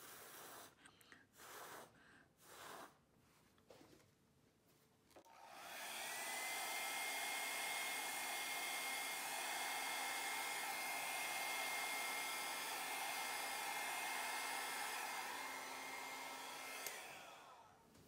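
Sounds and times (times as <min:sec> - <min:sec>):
hair dryer running: 0:05.2 - 0:18.0
hair dryer switch click: 0:16.6 - 0:17.2.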